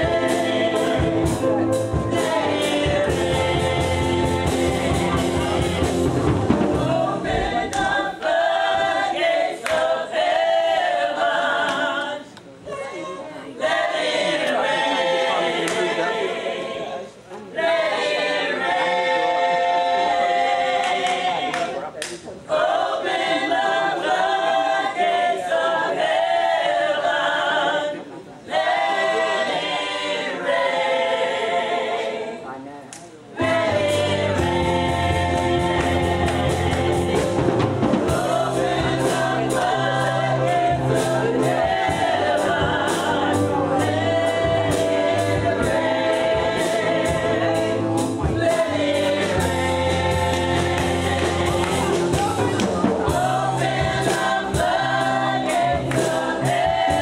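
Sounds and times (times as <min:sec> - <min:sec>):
women singing a cappella: 0:00.0 - 0:06.2, 0:06.8 - 0:21.8, 0:22.5 - 0:32.6, 0:33.3 - 0:57.0
bass and drums: 0:00.0 - 0:07.7, 0:33.4 - 0:57.0.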